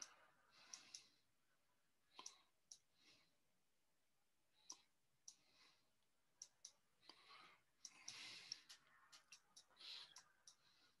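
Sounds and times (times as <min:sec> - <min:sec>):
faint irregular clicks: 0:00.0 - 0:03.4, 0:04.5 - 0:11.0.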